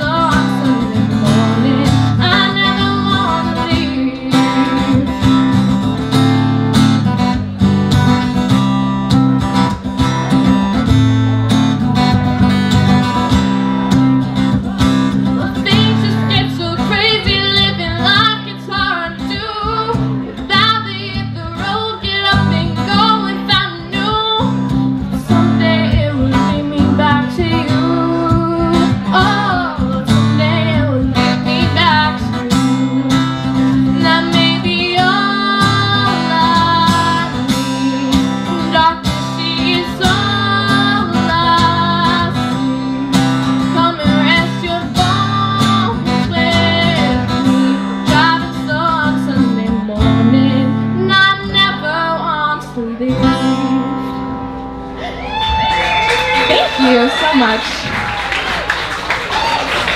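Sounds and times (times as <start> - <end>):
woman singing: 0.0 - 5.8, 14.6 - 54.3
acoustic guitar strumming: 0.0 - 55.3.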